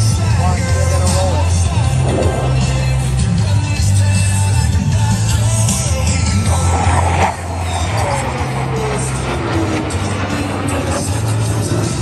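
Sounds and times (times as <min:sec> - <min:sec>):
jet engine roaring overhead: 0:00.0 - 0:12.0
jet whine falling in pitch: 0:01.5 - 0:03.5.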